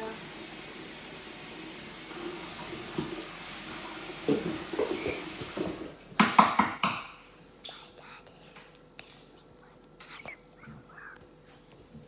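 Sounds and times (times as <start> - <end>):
faint whispery sounds: 7.6 - 11.8.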